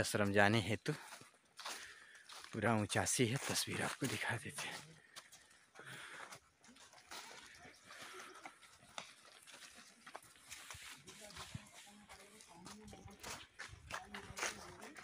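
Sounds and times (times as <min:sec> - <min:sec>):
footsteps on dirt path: 0:00.0 - 0:15.0.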